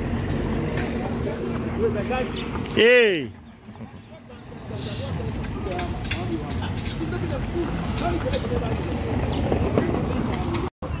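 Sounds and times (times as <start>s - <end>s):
vehicle engine rumble: 0.0s - 11.0s
faint voices: 0.5s - 11.0s.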